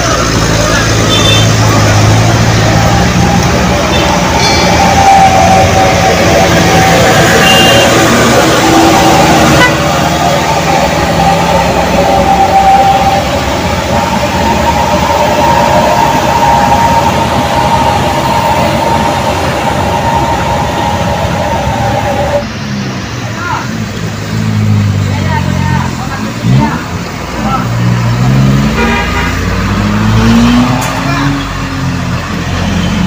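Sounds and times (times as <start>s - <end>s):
truck and car engines running: 0.0s - 33.0s
vehicle horn: 1.0s - 1.8s, 3.8s - 5.8s, 7.0s - 10.1s, 28.7s - 29.6s.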